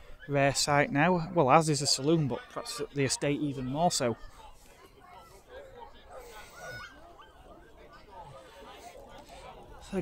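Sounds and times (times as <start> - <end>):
background chatter of people: 0.0 - 10.0.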